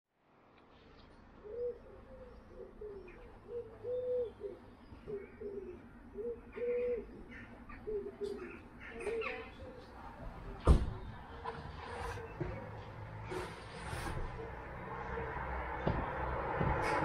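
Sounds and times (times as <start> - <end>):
dove cooing: 1.4 - 9.9.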